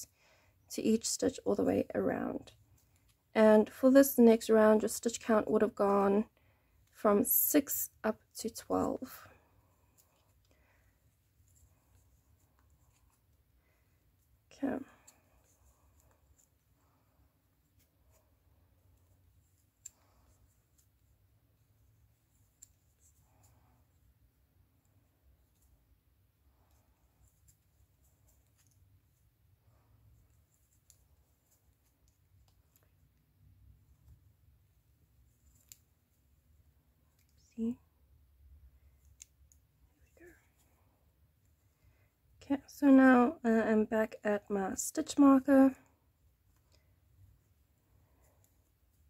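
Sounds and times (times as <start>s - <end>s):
crochet hook scratching yarn: 6.8s - 41.6s.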